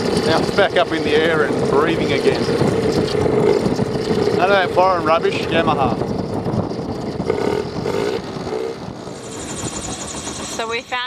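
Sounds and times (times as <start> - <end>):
outboard motor running: 0.0 - 11.0.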